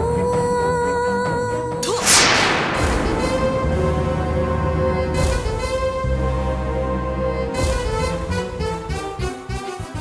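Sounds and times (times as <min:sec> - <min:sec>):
whip-crack sound effect sting: 0:01.8 - 0:06.4
low drone: 0:01.8 - 0:07.7.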